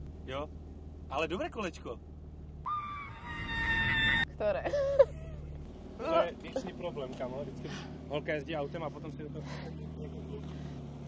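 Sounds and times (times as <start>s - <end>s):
low engine rumble: 0.0s - 11.0s
car tyres squealing: 2.6s - 5.0s.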